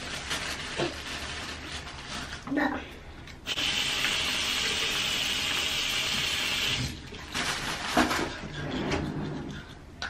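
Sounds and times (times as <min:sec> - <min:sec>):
faucet water running into sink: 0:03.5 - 0:07.0.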